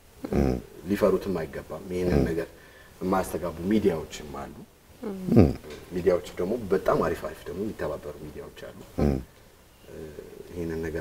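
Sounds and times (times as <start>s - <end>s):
person talking: 3.2s - 9.2s.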